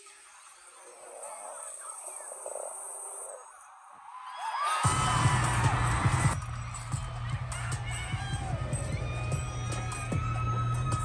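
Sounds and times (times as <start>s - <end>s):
crowd cheering and screaming: 3.6s - 11.0s
loud bass-heavy music: 4.9s - 11.0s.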